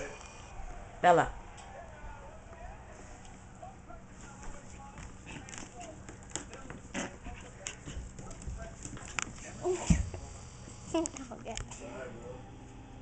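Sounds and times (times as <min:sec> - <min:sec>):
dog scuffling: 0:04.1 - 0:10.1.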